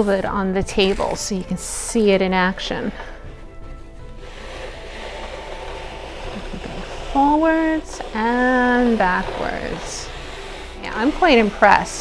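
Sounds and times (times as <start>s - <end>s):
soft music: 0.0s - 12.0s
push sweeper rolling on cloth: 4.1s - 12.0s.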